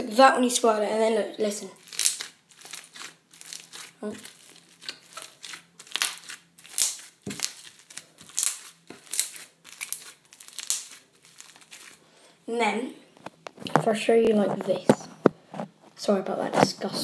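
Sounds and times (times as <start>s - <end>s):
slime squished by hand crackling: 1.8s - 12.0s.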